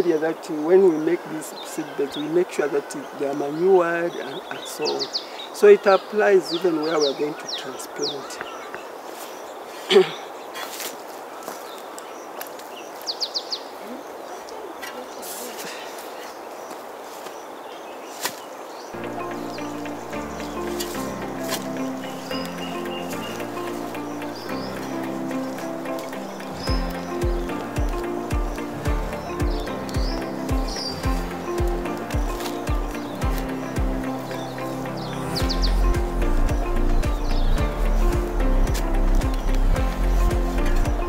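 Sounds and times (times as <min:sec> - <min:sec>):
bird chirps: 0:00.0 - 0:10.8, 0:16.2 - 0:41.0
background music: 0:19.0 - 0:41.0
steady low beat: 0:19.0 - 0:41.0.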